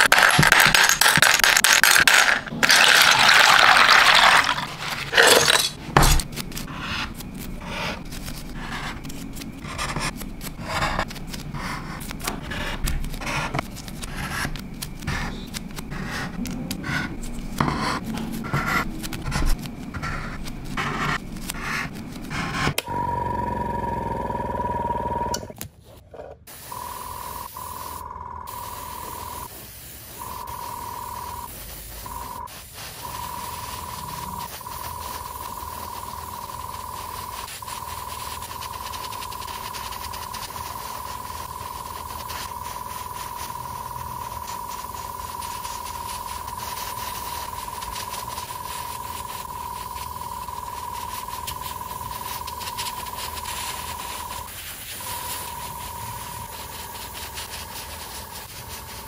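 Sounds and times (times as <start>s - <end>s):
spray paint hissing: 26.5s - 59.0s.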